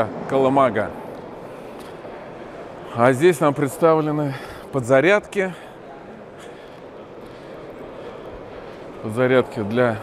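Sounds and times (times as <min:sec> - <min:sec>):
exhibition hall background din: 0:00.0 - 0:10.0.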